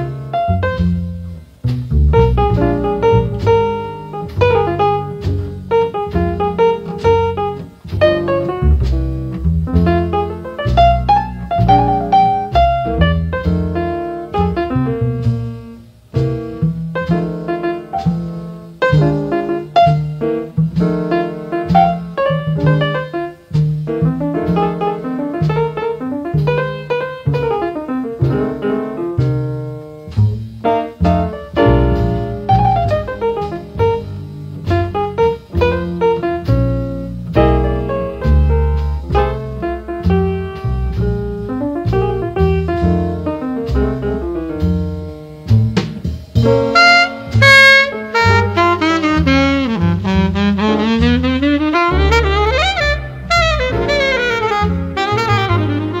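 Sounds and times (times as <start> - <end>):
jazz piano runs and chords: 0.0 - 56.0
walking double bass: 0.0 - 56.0.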